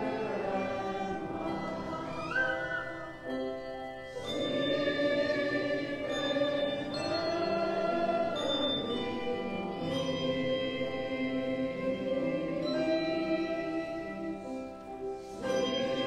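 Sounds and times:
group singing a hymn: 0:00.0 - 0:03.4, 0:04.1 - 0:16.0.

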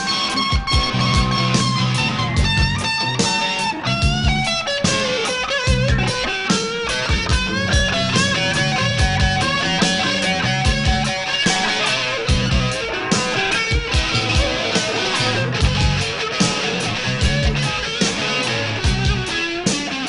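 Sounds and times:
bass guitar: 0:00.0 - 0:20.0
drums: 0:00.0 - 0:20.0
lead electric guitar melody: 0:00.0 - 0:20.0.

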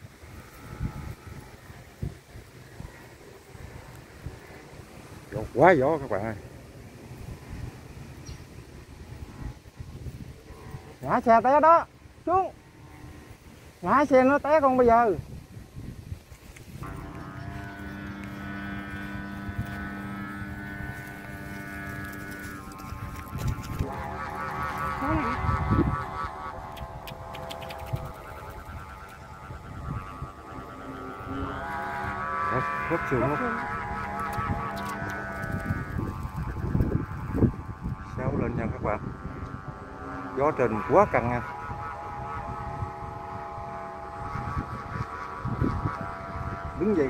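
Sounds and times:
kite flutes droning: 0:00.0 - 0:47.0.

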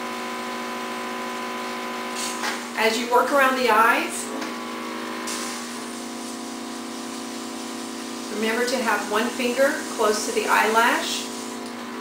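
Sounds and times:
compressor humming: 0:00.0 - 0:12.0
air hissing from airbrush: 0:11.1 - 0:11.6.

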